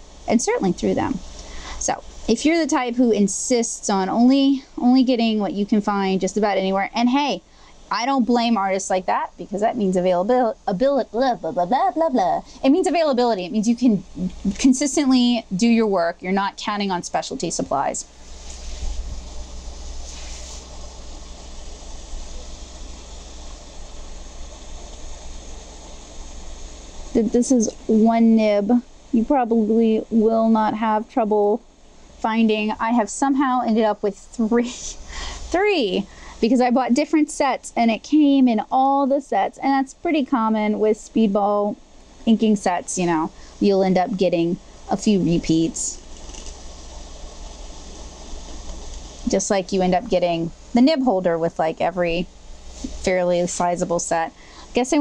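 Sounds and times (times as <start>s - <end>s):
low hum and hiss: 0.0s - 55.0s.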